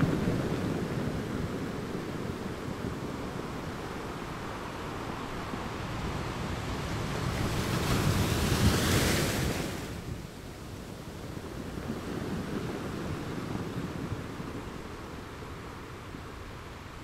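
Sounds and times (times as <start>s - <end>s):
ocean waves crashing on beach: 0.0s - 17.0s.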